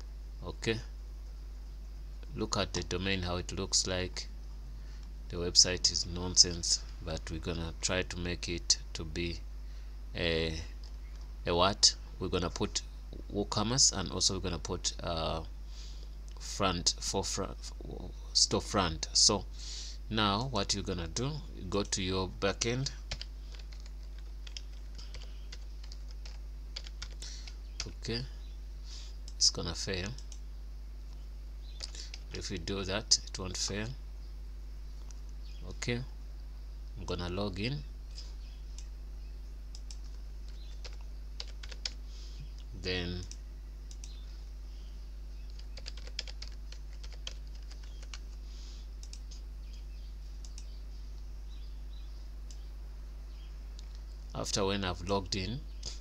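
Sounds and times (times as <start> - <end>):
steady low hum: 0.0 - 56.0
computer keyboard typing: 23.1 - 27.9, 39.8 - 42.0, 45.4 - 48.4.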